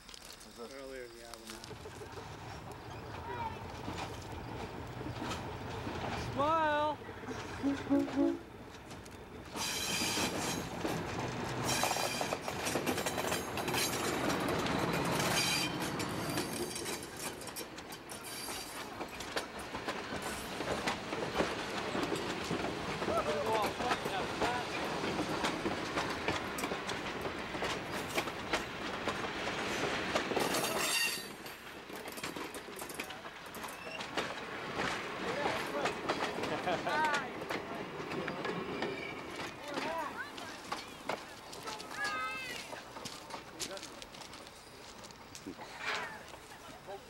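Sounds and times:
train wheels on rails: 0:00.0 - 0:47.0
high-pitched wheel squeals: 0:14.7 - 0:16.6, 0:30.8 - 0:31.3.

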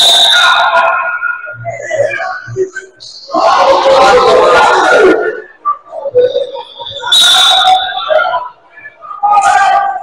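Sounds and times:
referee's whistle blast: 0:00.0 - 0:00.8, 0:07.0 - 0:08.2.

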